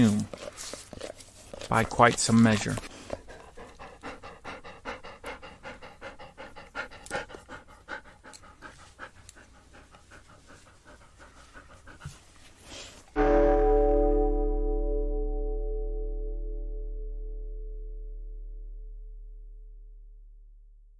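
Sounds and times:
dog panting: 0.0s - 13.2s.

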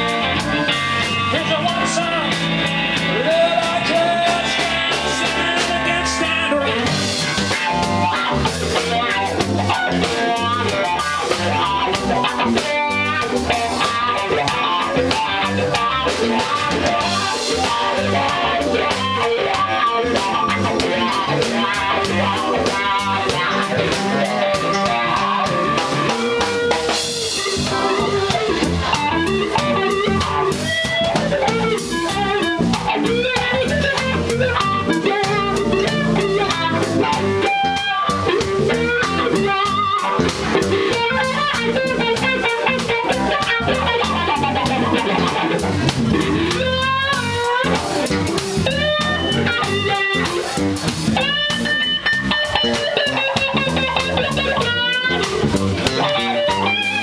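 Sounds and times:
drum kit: 0.0s - 57.0s
electric guitar solo: 0.0s - 57.0s
keyboard: 0.0s - 57.0s.

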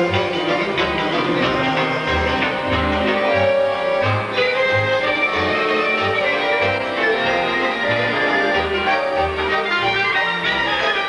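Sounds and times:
folk ensemble with violins: 0.0s - 11.0s.

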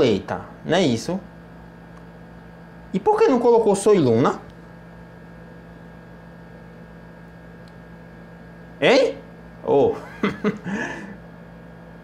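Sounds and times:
electrical hum: 0.0s - 12.0s
man laughing: 9.8s - 11.3s.

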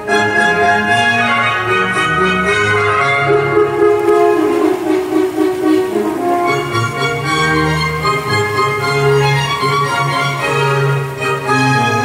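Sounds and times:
orchestral music held chords: 0.0s - 12.0s.

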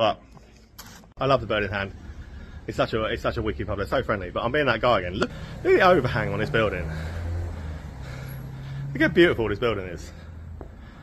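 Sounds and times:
vehicle engine humming: 1.3s - 11.0s.

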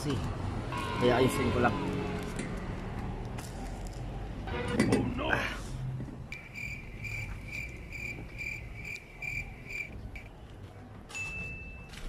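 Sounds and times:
cricket trilling: 6.3s - 10.3s.

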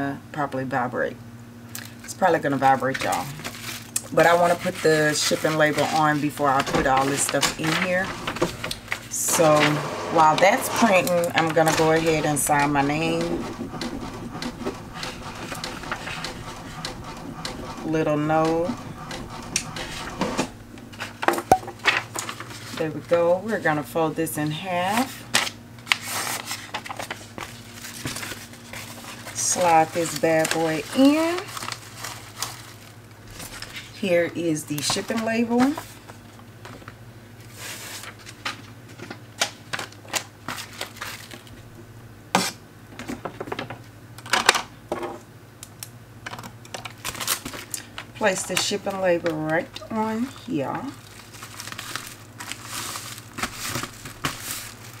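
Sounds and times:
paper handling noises: 2.7s - 23.7s, 24.9s - 34.1s, 34.8s - 41.7s, 46.3s - 55.0s.

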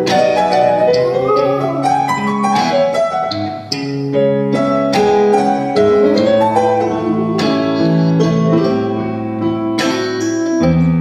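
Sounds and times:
sustained piano chords: 0.0s - 11.0s.

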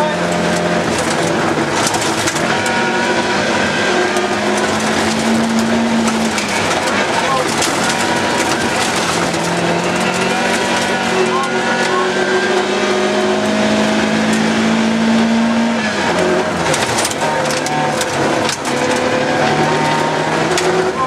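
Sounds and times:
gravel striking car: 0.0s - 21.0s
rally car engine revving: 0.0s - 21.0s.

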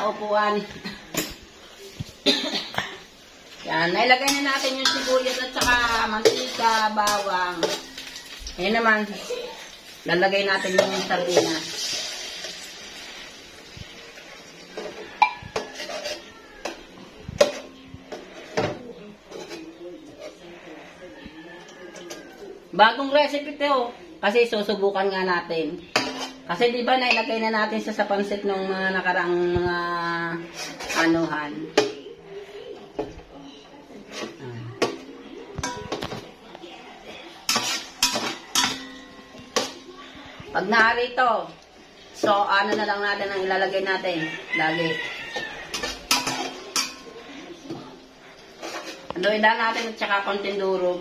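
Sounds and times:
metal spoon scraping a pot: 3.9s - 13.1s, 14.6s - 20.8s, 21.8s - 22.5s, 25.8s - 27.4s, 30.3s - 31.9s, 33.9s - 35.0s, 37.3s - 40.2s, 42.2s - 51.0s.

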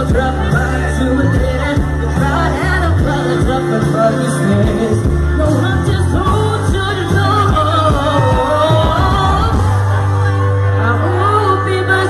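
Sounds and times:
man singing: 0.0s - 9.8s
live band music: 0.0s - 12.0s.

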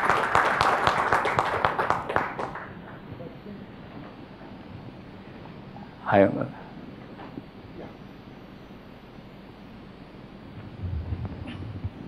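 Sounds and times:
audience applauding: 0.0s - 2.8s.

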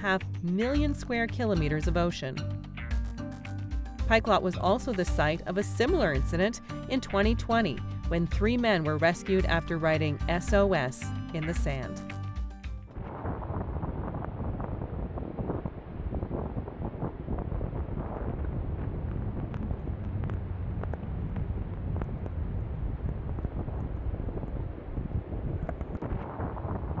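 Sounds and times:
gusty wind buffeting microphone: 12.9s - 27.0s.

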